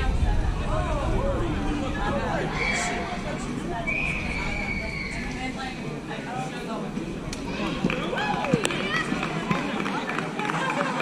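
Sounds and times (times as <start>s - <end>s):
people calling out and talking: 0.0s - 11.0s.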